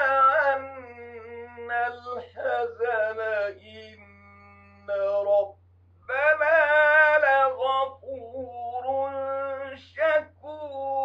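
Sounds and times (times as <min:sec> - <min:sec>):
man chanting melodically: 0:00.0 - 0:11.0
steady low hum: 0:00.0 - 0:11.0.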